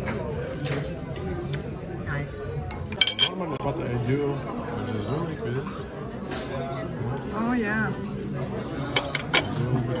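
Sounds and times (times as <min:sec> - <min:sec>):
tableware clinking: 0:00.0 - 0:03.6, 0:07.3 - 0:10.0.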